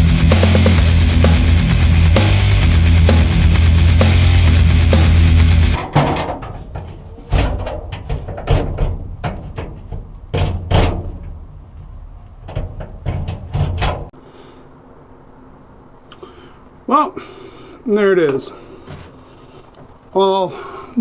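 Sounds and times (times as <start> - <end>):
background music: 0.0 - 5.8.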